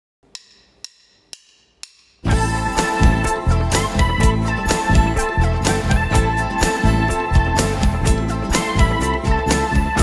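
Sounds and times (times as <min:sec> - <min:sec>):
wood-block count-in clicks: 0:00.2 - 0:02.3.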